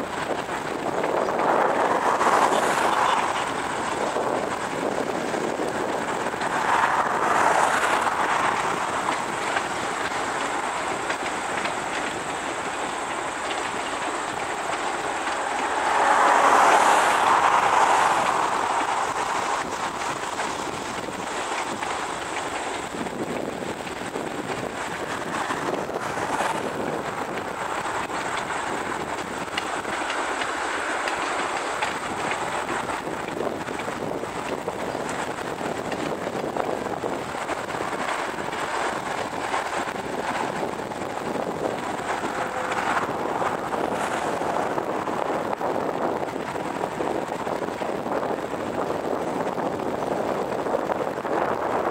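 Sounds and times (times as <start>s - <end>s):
car passing: 0.0s - 51.9s
clicks over rail joints: 0.0s - 51.9s
distant train wheels rushing: 0.0s - 51.9s.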